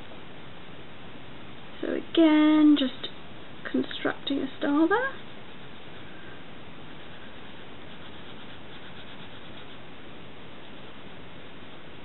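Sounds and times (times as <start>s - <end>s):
pencil rubbing on foam: 5.1s - 6.1s, 6.9s - 9.9s.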